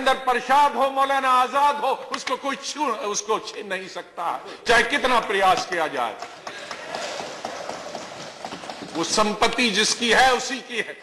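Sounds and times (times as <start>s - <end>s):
people thumping desks: 6.2s - 9.6s.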